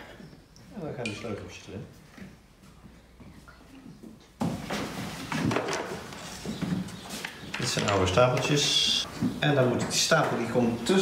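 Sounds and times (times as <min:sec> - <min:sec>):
wooden pieces knocking and rattling: 0:05.0 - 0:10.5.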